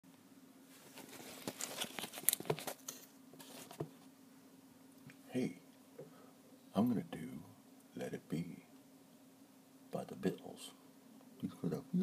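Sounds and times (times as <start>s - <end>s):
phone handling rustling: 0.8s - 4.0s.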